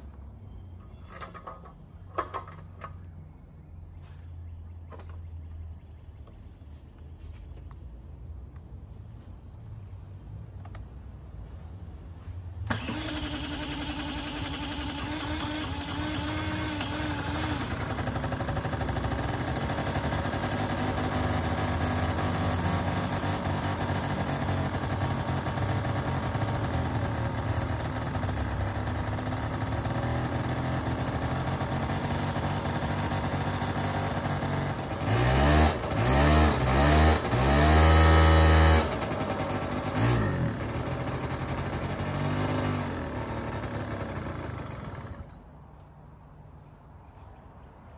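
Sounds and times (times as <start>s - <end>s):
engine revving: 12.7s - 45.4s
scooter engine idling: 12.7s - 45.5s.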